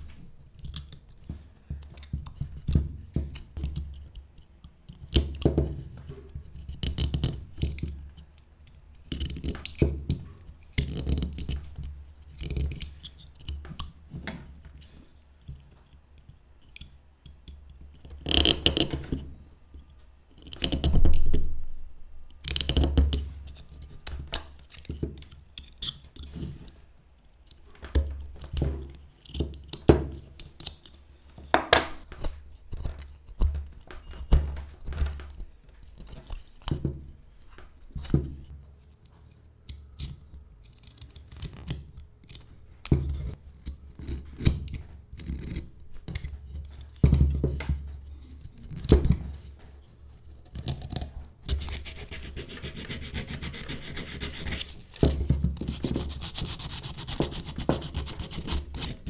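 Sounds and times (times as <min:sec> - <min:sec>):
sandpaper rubbing on wood: 0:51.5 - 0:54.7, 0:55.7 - 0:58.9.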